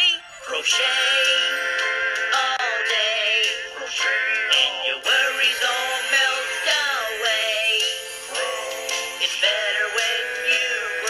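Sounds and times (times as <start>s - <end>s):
pop backing music: 0.0s - 11.0s
processed male singing voice: 0.0s - 11.0s.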